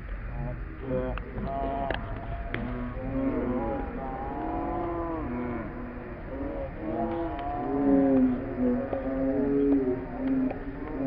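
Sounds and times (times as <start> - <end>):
voices shouting and calling out: 0.2 - 11.0.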